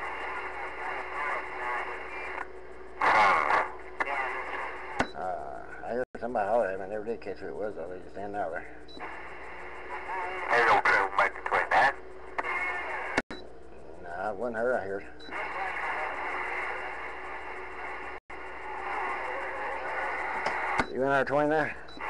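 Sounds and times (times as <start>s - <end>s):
garbled radio voices: 0.0s - 13.2s, 14.0s - 22.0s
radio static hiss: 0.0s - 13.2s, 14.0s - 22.0s.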